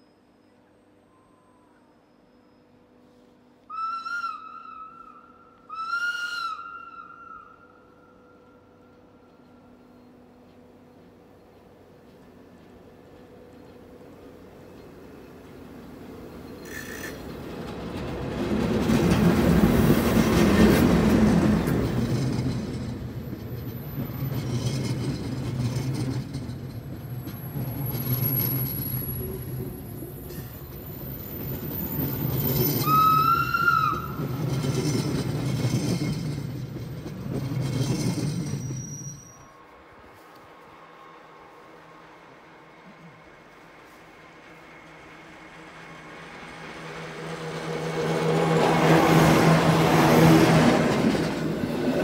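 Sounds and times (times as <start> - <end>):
electric locomotive passing: 0.0 - 52.0
train wheel noise: 5.5 - 52.0
wheel squeal: 16.3 - 17.4, 22.0 - 39.6.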